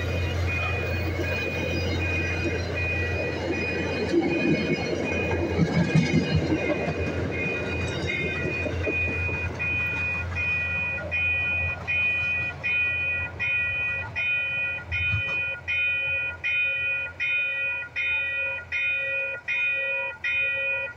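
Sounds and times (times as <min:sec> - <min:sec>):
crossing warning bell ringing: 0:00.0 - 0:20.9
train rumbling past: 0:00.0 - 0:20.9.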